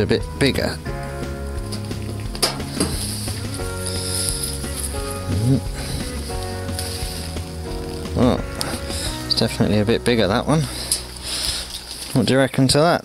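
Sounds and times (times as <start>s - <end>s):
background music with held chords: 0.0s - 13.0s
soil and leaves rustling: 0.0s - 13.0s.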